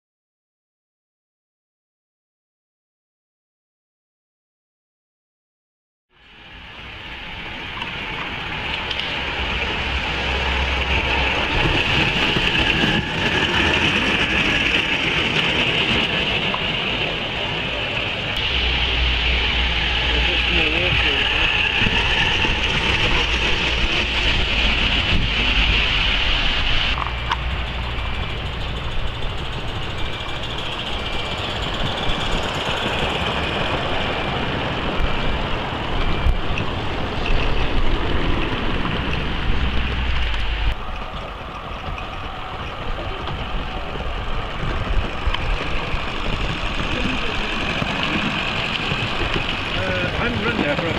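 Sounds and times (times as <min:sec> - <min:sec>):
low rumble: 0:08.0 - 0:50.9
indistinct voices talking: 0:09.5 - 0:25.1, 0:42.8 - 0:50.9.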